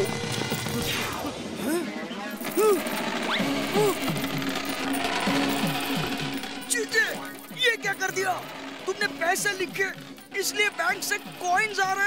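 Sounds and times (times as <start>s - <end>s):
coins rolling and clinking: 0.0s - 1.0s, 2.3s - 12.0s
background music: 0.0s - 12.0s.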